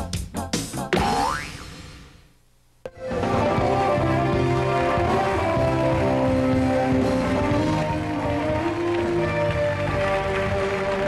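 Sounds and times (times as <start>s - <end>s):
springy boing sound effect: 1.0s - 1.6s.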